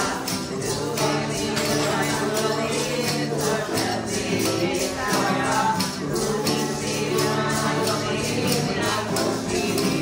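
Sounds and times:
banjo: 0:00.0 - 0:10.0
strummed acoustic guitar: 0:00.0 - 0:10.0
women singing together: 0:00.0 - 0:10.0.

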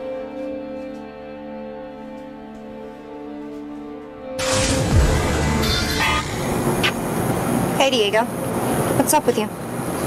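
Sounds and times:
deep falling boom: 0:04.4 - 0:07.1
street traffic noise: 0:05.1 - 0:10.0.

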